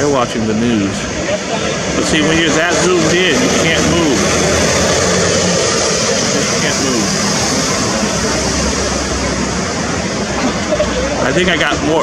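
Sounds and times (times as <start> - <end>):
street traffic: 0.0 - 12.0.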